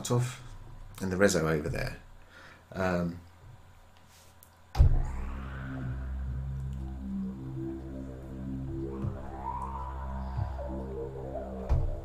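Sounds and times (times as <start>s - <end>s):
synthesizer note with filter sweep: 4.8s - 12.0s.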